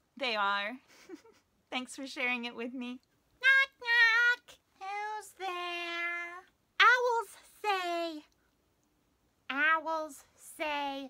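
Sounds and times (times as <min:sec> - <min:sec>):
woman singing in childlike voice: 0:03.4 - 0:08.3, 0:09.5 - 0:11.0.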